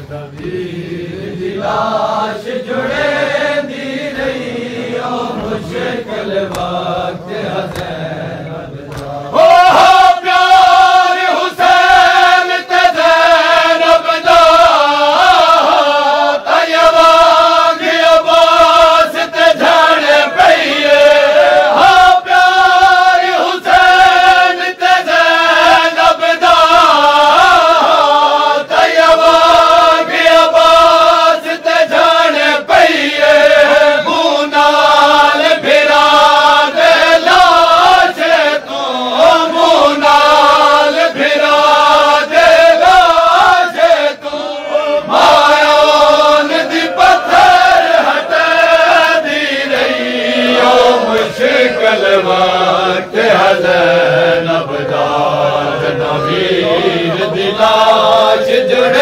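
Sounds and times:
men chanting a lament: 0.0s - 59.0s
hands slapping chests: 6.4s - 8.2s, 8.8s - 9.3s.

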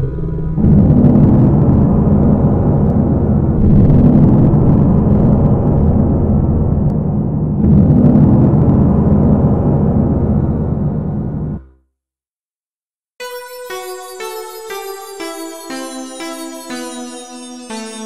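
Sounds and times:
low rumbling drone: 0.0s - 11.6s.

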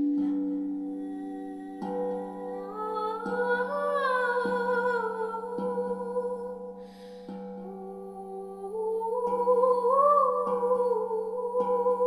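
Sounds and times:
woman humming a melody: 0.0s - 12.0s.

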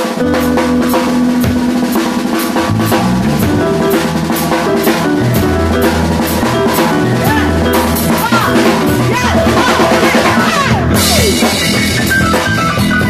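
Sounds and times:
amplified guitar notes: 0.0s - 13.0s
drum kit beat: 0.0s - 13.0s.

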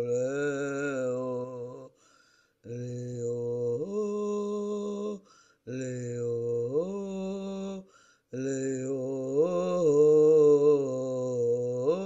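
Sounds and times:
wordless chant-like singing: 0.0s - 12.0s.

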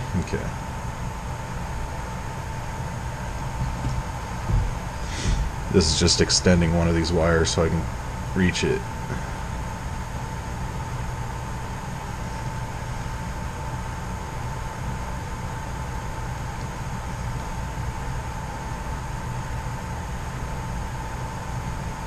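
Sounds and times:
mechanical hum and hiss: 0.0s - 22.0s.

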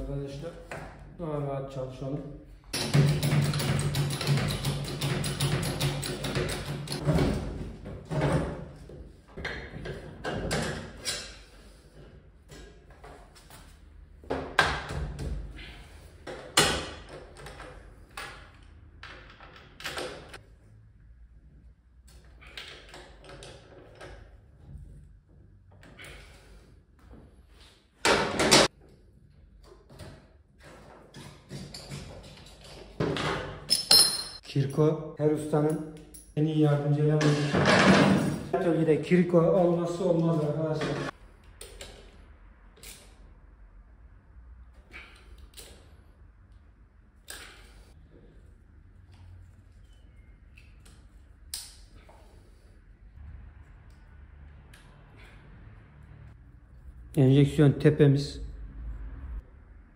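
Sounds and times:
hand tools clinking and rattling: 31.2s - 34.5s.

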